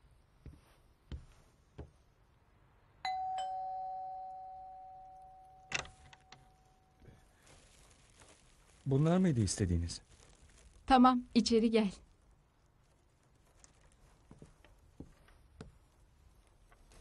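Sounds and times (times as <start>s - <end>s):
two-tone doorbell: 3.1s - 6.7s.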